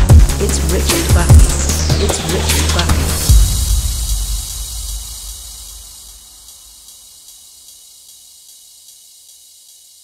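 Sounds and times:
deep bass note: 0.0s - 6.2s
high hiss: 0.5s - 10.0s.

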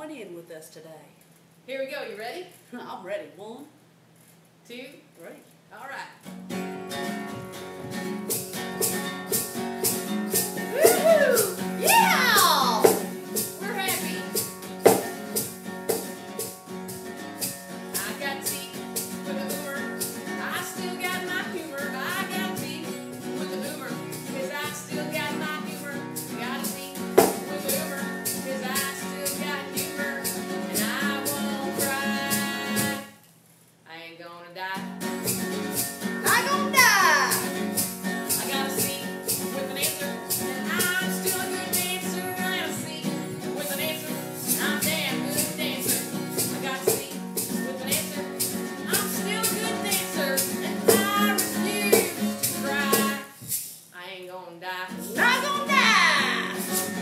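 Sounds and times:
acoustic guitar strumming: 6.2s - 33.2s, 34.8s - 53.7s, 54.9s - 57.0s
women singing country song: 10.3s - 15.1s, 17.9s - 33.2s, 36.2s - 53.4s, 54.0s - 57.0s.

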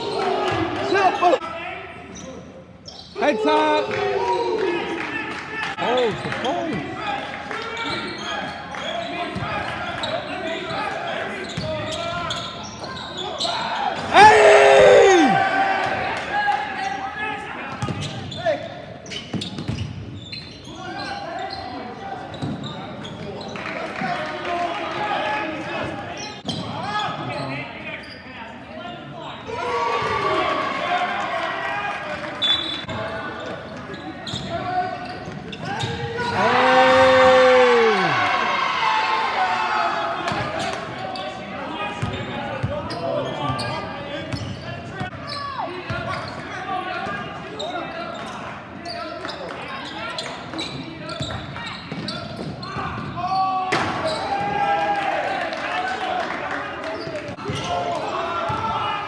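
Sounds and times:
crowd cheering: 14.0s - 16.6s, 36.2s - 40.3s
loud shout: 14.0s - 16.7s, 36.1s - 40.3s
people calling out: 36.2s - 38.5s.

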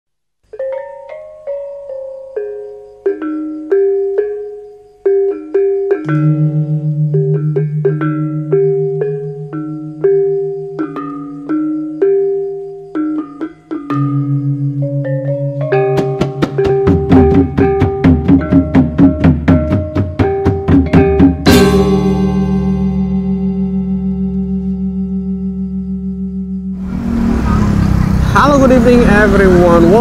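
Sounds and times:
mallet percussion melody: 0.5s - 27.4s, 28.3s - 30.0s
pulsing bass line: 20.9s - 30.0s.

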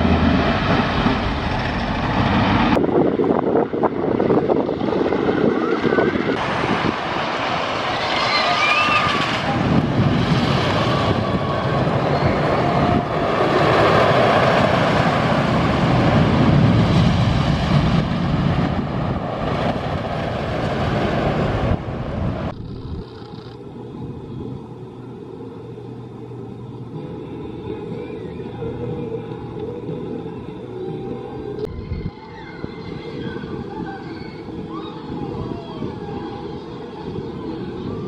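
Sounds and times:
roller coaster rumbling on wooden track: 0.0s - 38.0s
ride area background: 22.4s - 38.0s.

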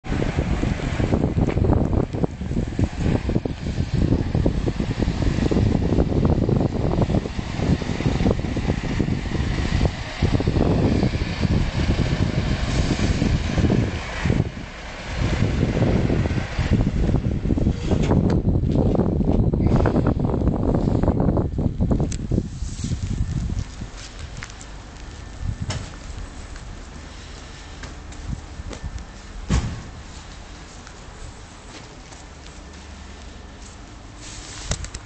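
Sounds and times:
wind buffeting microphone: 0.0s - 32.6s
bus diesel engine running: 0.0s - 35.0s.

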